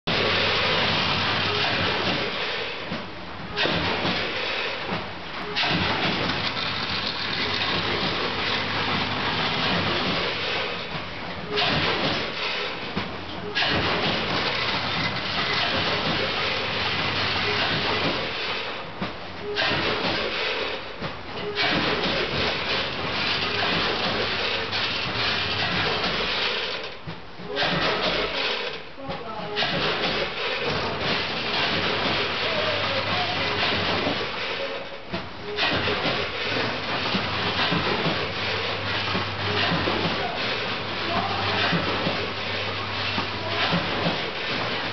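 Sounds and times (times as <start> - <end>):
packaging machinery running: 0.1 - 44.9.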